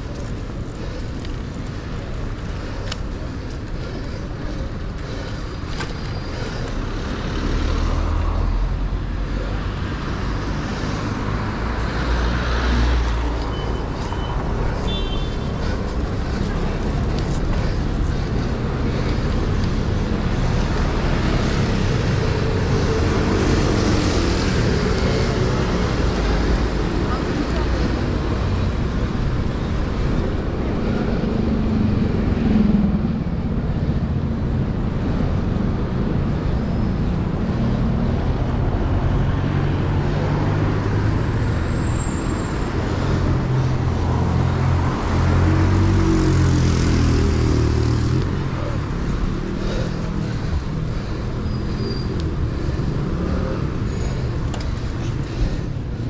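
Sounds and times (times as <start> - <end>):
cars passing: 0.0 - 56.0
low traffic rumble: 0.0 - 56.0.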